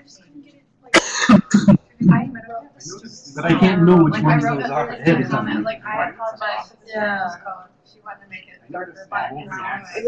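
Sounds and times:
person coughing: 0:00.9 - 0:02.2.

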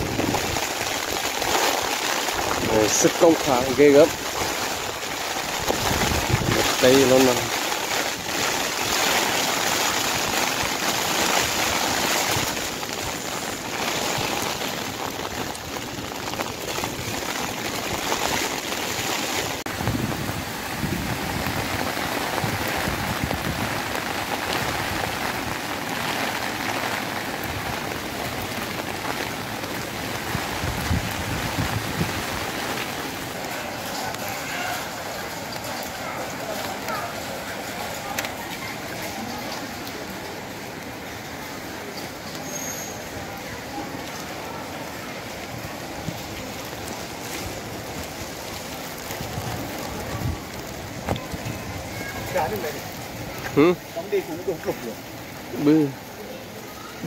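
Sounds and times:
strong gusting wind: 0:00.0 - 0:02.9, 0:04.1 - 0:07.0, 0:10.1 - 0:25.4, 0:30.2 - 0:32.6
heavy rain: 0:00.0 - 0:57.0.

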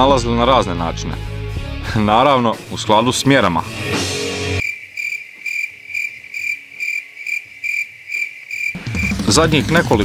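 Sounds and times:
crickets chirping: 0:04.6 - 0:09.2.

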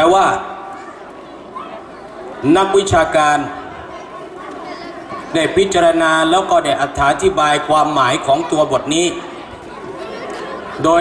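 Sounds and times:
man speaking over loudspeakers: 0:00.0 - 0:00.7, 0:02.4 - 0:03.7, 0:05.3 - 0:09.3, 0:10.8 - 0:11.0
faint background chatter: 0:00.0 - 0:11.0.

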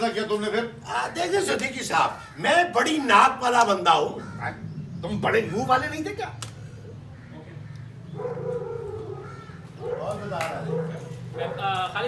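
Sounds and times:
steady low hum: 0:03.8 - 0:10.0.

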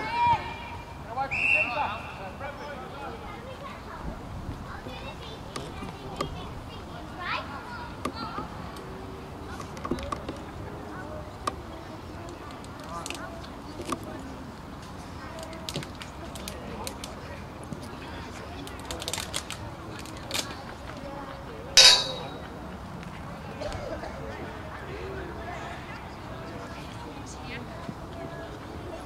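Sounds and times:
distant shouts and calls: 0:00.0 - 0:03.2.

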